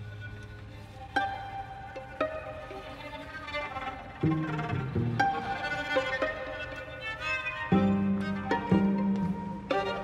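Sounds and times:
string quartet playing: 0.0 - 10.0.

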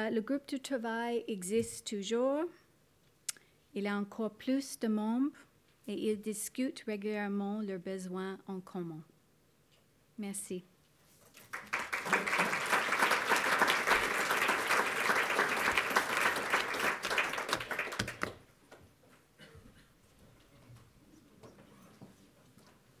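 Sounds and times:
audience applauding: 11.4 - 18.4.

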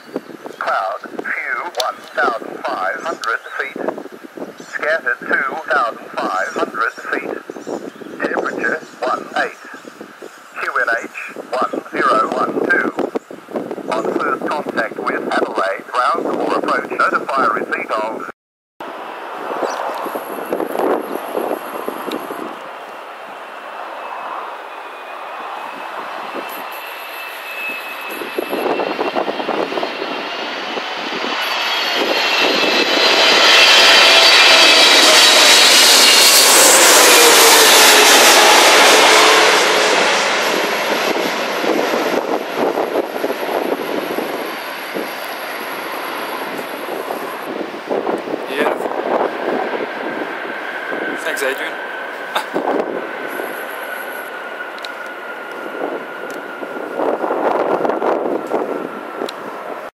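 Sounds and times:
jet airliner engine whine overhead: 0.0 - 59.9.

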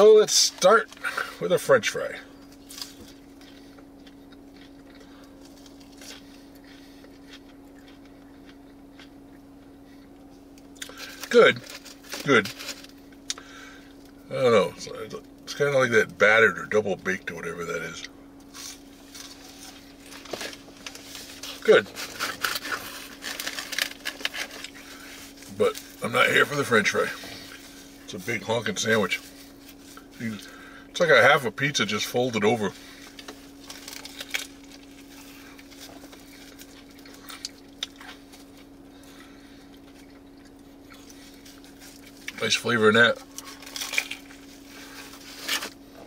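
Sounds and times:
faint hum: 0.0 - 46.0
person chewing: 2.5 - 13.4, 18.4 - 26.0, 33.0 - 42.4, 43.2 - 46.0.

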